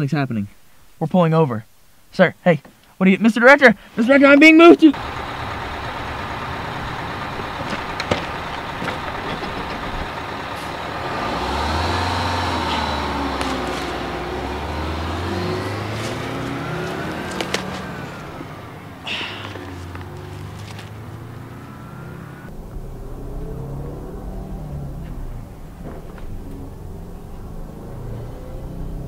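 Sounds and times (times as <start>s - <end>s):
truck engine pulling away: 4.9s - 29.0s.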